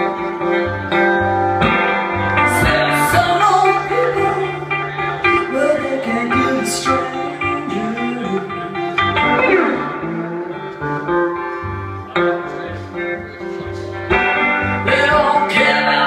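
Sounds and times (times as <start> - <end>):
bass line: 0.0 - 16.0
electric guitar with sliding notes: 0.0 - 16.0.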